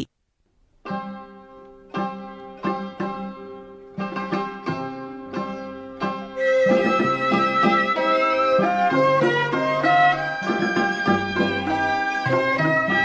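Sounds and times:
plucked string notes: 0.8 - 13.0
held melody line: 6.4 - 13.0.

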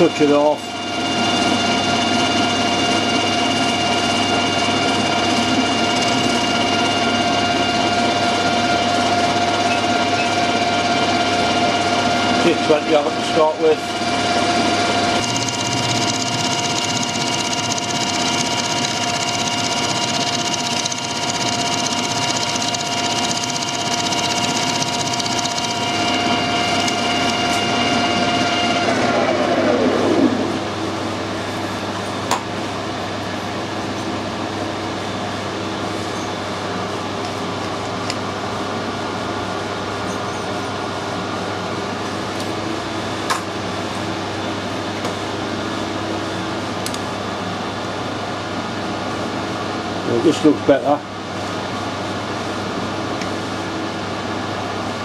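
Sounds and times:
metal lathe gear whine: 0.0 - 29.9.

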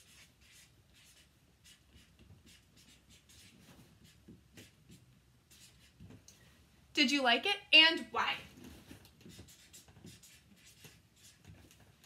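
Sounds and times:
marker scratching on paper: 0.0 - 6.2, 8.6 - 12.0.

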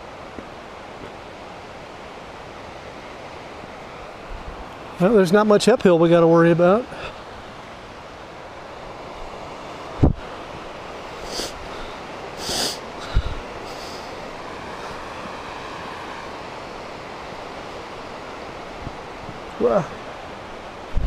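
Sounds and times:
steady rushing outdoor noise: 0.0 - 21.0.

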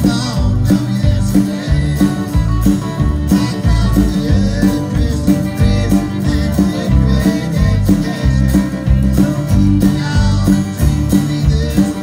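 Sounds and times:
country band playing: 0.0 - 12.0.

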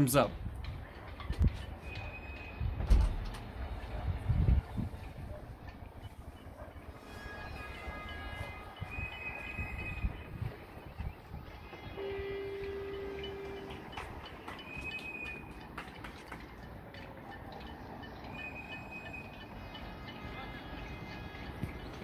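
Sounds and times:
low rumble of wind or traffic: 0.0 - 22.0
distant horns sounding: 4.5 - 15.8, 16.6 - 22.0
faint clapping: 13.7 - 17.2.

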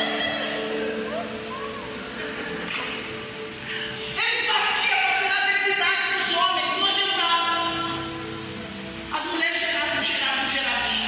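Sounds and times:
keyboard sustained chords: 0.0 - 11.0.

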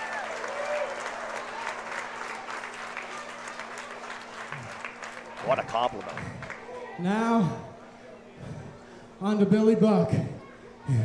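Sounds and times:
crowd applauding: 0.0 - 7.0.

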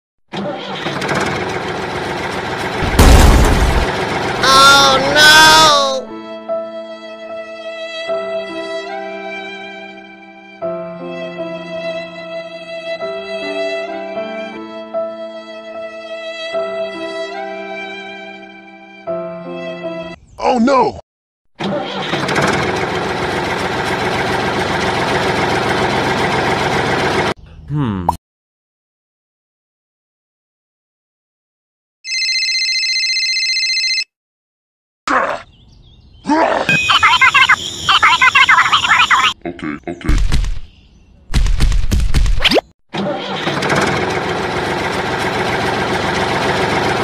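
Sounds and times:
engine starting and running: 0.3 - 5.8, 21.6 - 27.4, 41.6 - 47.0
deep engine rumble: 0.7 - 5.8, 21.8 - 27.6, 43.1 - 47.0.

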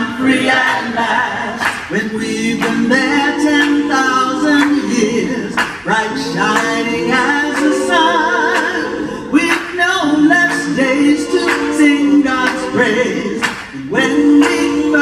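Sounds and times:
lead voice singing with vibrato: 0.0 - 15.0
vocal group singing a cappella: 0.0 - 15.0.

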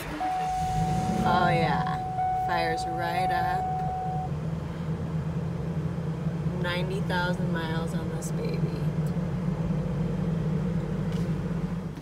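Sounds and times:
high warning tone: 0.0 - 4.4
bus engine idling: 0.0 - 12.0.

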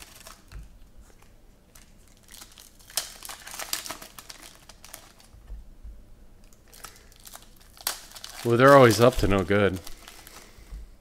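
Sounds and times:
foil wrapper crinkling: 0.0 - 5.4, 6.4 - 10.6.

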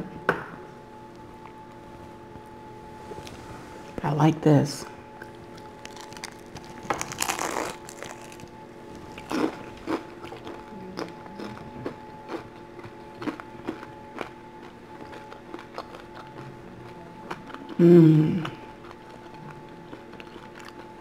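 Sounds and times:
chewing: 5.2 - 8.5, 9.1 - 17.8, 18.4 - 21.0
crunchy bite: 5.6 - 8.5, 9.2 - 11.6.

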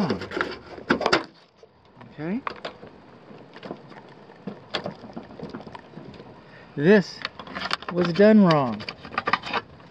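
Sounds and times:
faint steady hiss: 0.0 - 9.9.

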